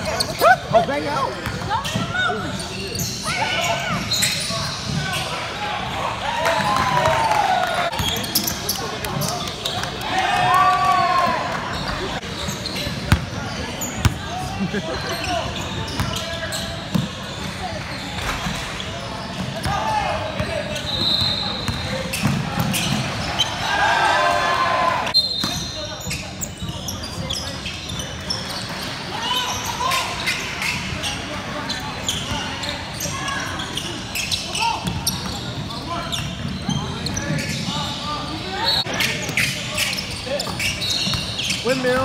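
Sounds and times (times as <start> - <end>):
voices of players and spectators: 0.0 - 42.0.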